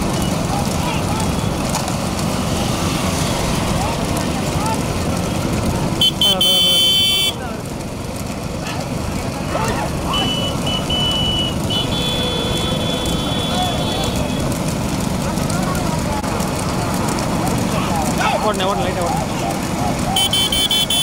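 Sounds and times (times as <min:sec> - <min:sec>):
many motorcycles riding: 0:00.0 - 0:21.0
people shouting: 0:09.4 - 0:14.4, 0:17.5 - 0:21.0.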